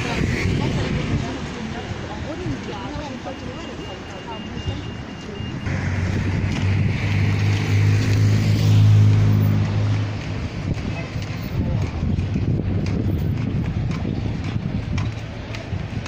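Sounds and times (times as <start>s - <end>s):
vehicle engine passing by: 5.6s - 14.1s.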